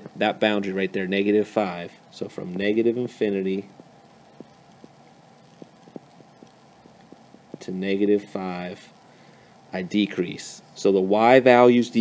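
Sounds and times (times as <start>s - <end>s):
stylus tapping on tablet screen: 3.8s - 7.7s.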